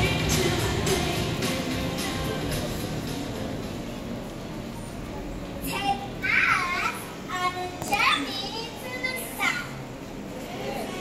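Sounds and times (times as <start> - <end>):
children chattering: 4.6 - 11.0
children calling out: 5.6 - 11.0.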